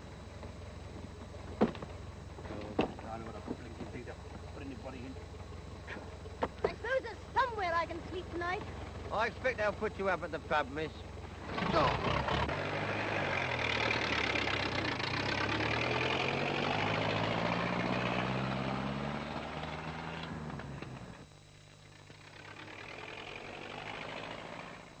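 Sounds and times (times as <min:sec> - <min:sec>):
car engine driving off: 0:00.0 - 0:21.3, 0:21.9 - 0:25.0.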